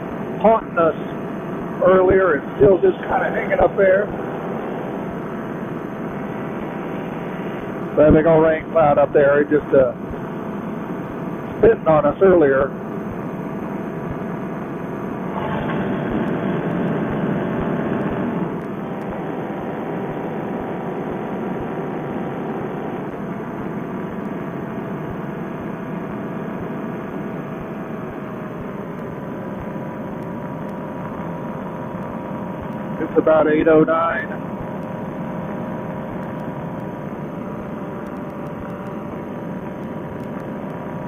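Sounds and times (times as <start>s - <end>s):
paramotor engine and propeller droning: 0.0s - 41.0s.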